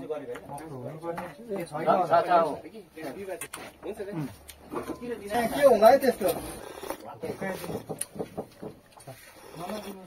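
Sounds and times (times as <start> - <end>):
men talking quietly: 0.0 - 10.0.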